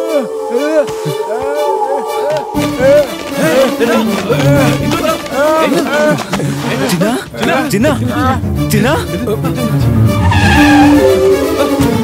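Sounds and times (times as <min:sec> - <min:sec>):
background music: 0:00.0 - 0:12.0
tyres screeching under braking: 0:10.0 - 0:11.6.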